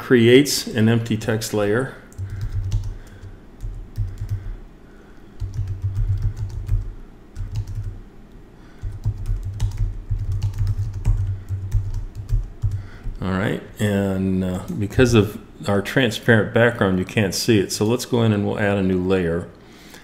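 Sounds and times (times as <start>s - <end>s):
computer keyboard typing: 2.1s - 4.5s, 5.4s - 8.0s, 8.8s - 13.2s.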